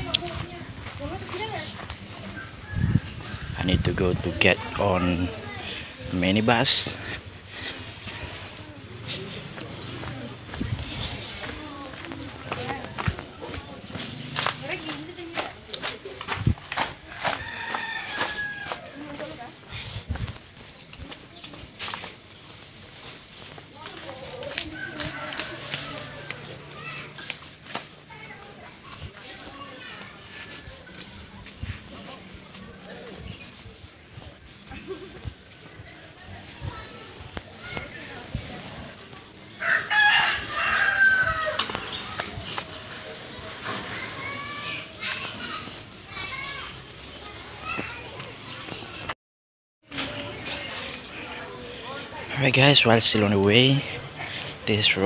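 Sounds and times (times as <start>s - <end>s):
background voices: 0.0s - 39.6s, 49.9s - 55.0s
footsteps on gravel: 0.0s - 46.1s
rooster crowing: 17.2s - 19.0s, 39.6s - 41.7s.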